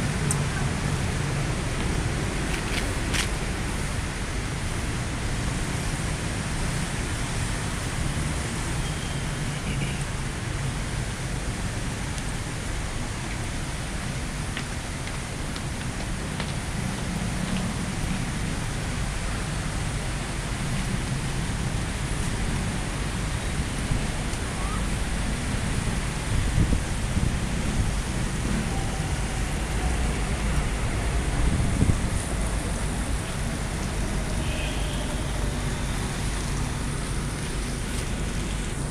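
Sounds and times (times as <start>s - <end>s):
city traffic hiss and rumble: 0.0s - 38.9s.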